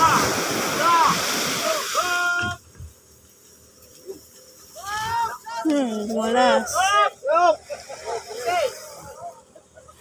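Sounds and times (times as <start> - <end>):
man's long held shout: 0.0 - 2.6, 4.8 - 5.7, 6.5 - 7.6
men calling out: 0.0 - 2.7, 4.1 - 9.9
surf breaking on a beach: 0.0 - 2.9, 6.3 - 10.0.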